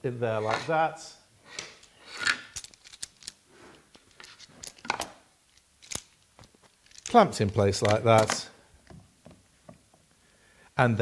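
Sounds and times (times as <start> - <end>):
metal clamp clattering: 2.3 - 3.4, 4.1 - 9.0.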